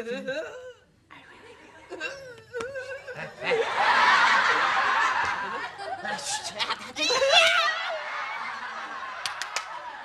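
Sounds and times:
people laughing: 1.4s - 10.0s.

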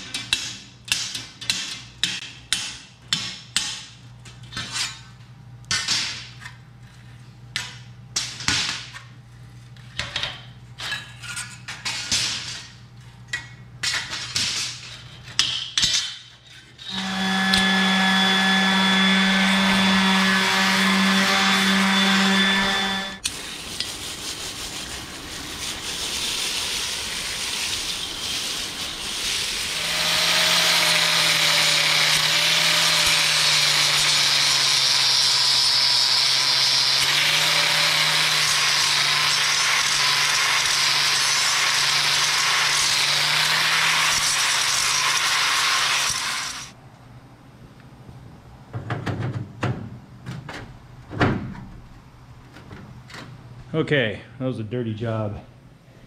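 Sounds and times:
angle grinder grinding metal: 16.8s - 23.4s, 27.2s - 46.8s.

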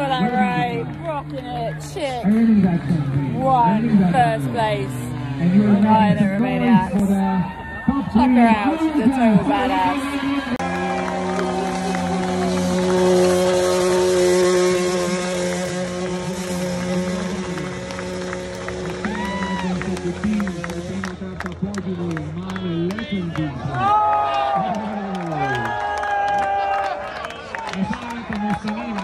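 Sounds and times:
announcer over loudspeakers: 0.0s - 25.8s
crowd noise: 0.0s - 29.0s
scattered clapping: 10.6s - 29.0s.

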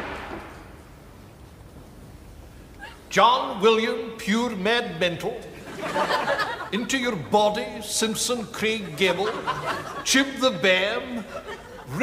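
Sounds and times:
man speaking: 3.1s - 5.5s, 6.7s - 12.0s.

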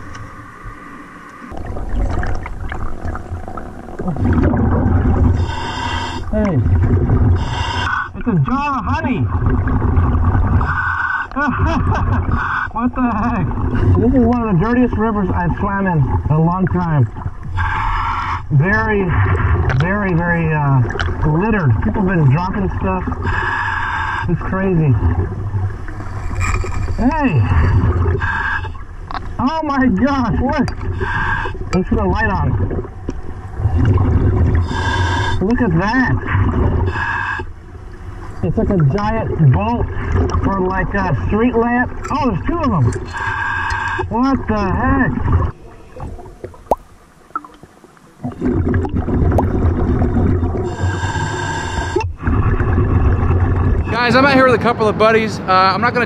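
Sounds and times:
regulator bubbles underwater: 0.0s - 23.5s, 24.1s - 54.0s
clicks underwater: 1.2s - 5.4s, 19.3s - 22.0s, 29.0s - 29.4s, 31.7s - 34.7s, 38.3s - 41.0s, 41.9s - 50.7s
scuba regulator breathing: 5.2s - 6.4s, 7.2s - 8.2s, 10.5s - 11.4s, 12.2s - 12.8s, 17.4s - 18.5s, 23.1s - 24.5s, 25.9s - 28.9s, 30.8s - 31.7s, 34.4s - 35.5s, 36.3s - 37.6s, 43.0s - 44.1s, 50.6s - 52.2s.

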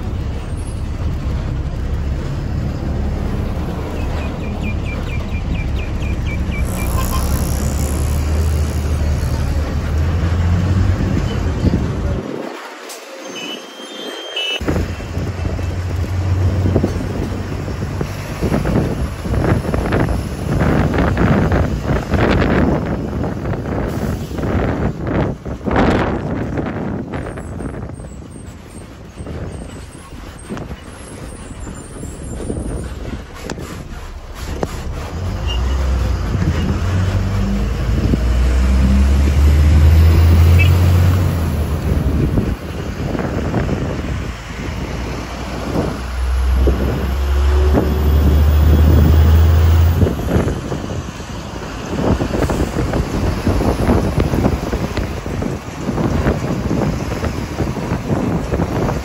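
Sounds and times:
bus engine rumble: 0.0s - 59.0s
road and wind noise: 0.0s - 59.0s.

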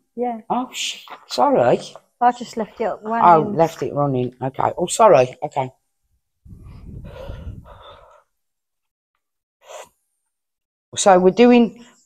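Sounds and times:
person exhaling breathily: 6.5s - 8.3s.

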